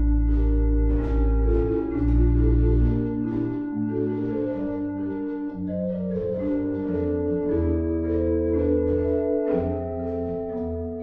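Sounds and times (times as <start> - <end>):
pipe organ playing chords: 0.0 - 11.0.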